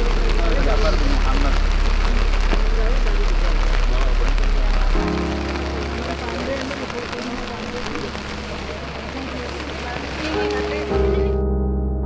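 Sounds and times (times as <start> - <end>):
steady hiss: 0.0 - 11.2
heavy low rumble: 0.0 - 12.0
held musical notes: 3.2 - 12.0
voices in melodic recitation: 5.0 - 11.4.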